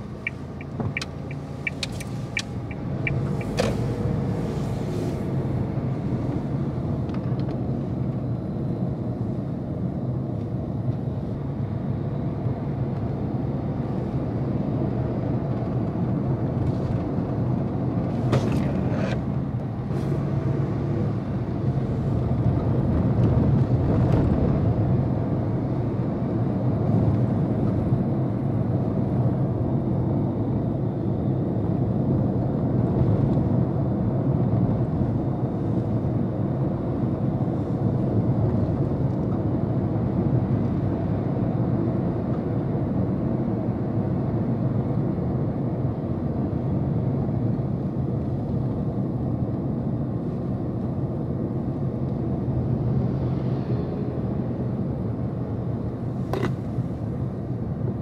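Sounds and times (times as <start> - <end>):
car engine rumble: 0.0 - 58.0
tyre road noise: 0.0 - 58.0
regular ticks: 0.2 - 3.6.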